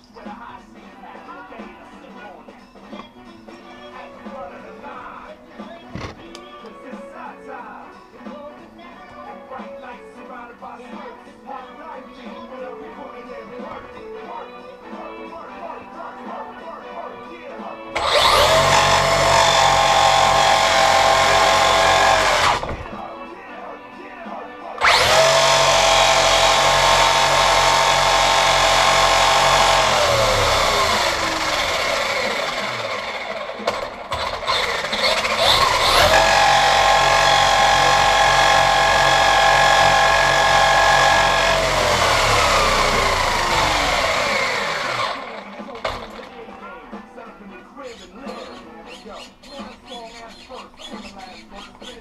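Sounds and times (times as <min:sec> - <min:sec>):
electric toy truck motor whine: 0:18.0 - 0:22.9, 0:24.8 - 0:45.7.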